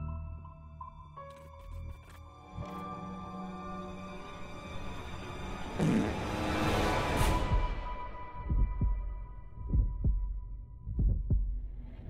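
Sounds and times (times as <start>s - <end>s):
heartbeat thumps: 8.4s - 12.0s.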